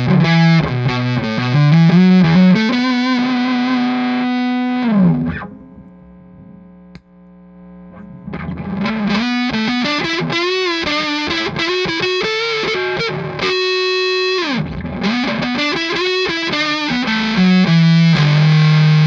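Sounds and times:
fuzzy electric guitar lead: 0:00.0 - 0:06.9, 0:07.5 - 0:19.0.

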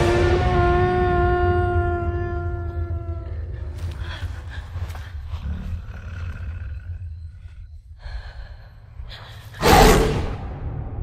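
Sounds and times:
deep rumble: 0:00.0 - 0:11.0.

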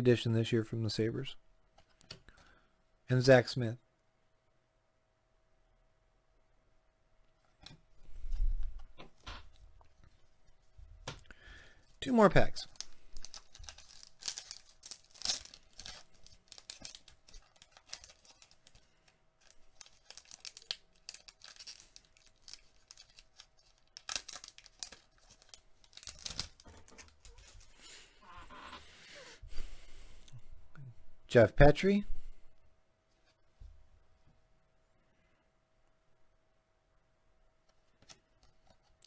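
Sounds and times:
foil wrapper tearing and crinkling: 0:12.6 - 0:27.6.

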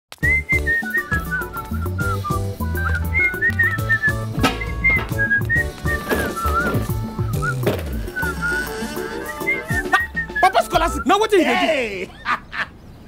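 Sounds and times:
whistled tune: 0:00.2 - 0:11.3.

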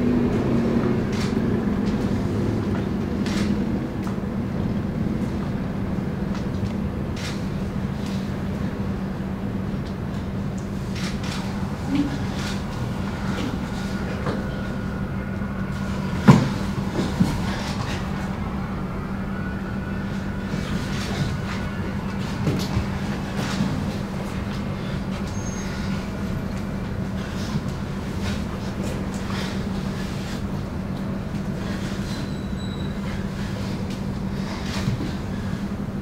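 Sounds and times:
steady low hum: 0:00.0 - 0:36.0
thin high squeak: 0:32.1 - 0:33.0.

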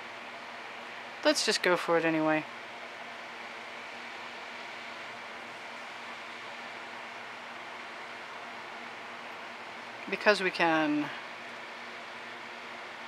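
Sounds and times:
faint hum: 0:00.0 - 0:13.0.

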